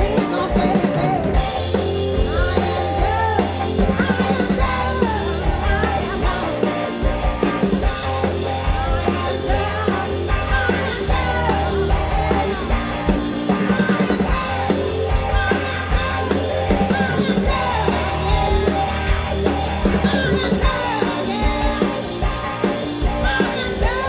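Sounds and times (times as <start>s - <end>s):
blues-rock band playing live: 0.0s - 24.0s
drum kit beat: 0.0s - 24.0s
electric guitar: 0.0s - 24.0s.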